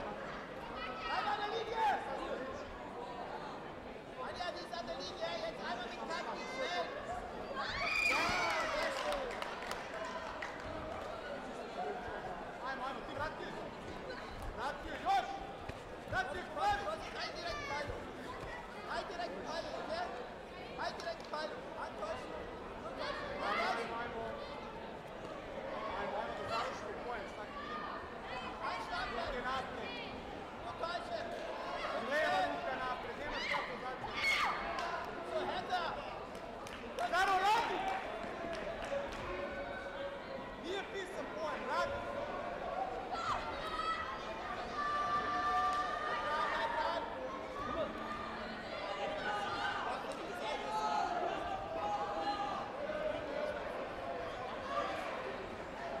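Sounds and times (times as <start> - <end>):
distant voices in a hall: 0.0 - 56.0.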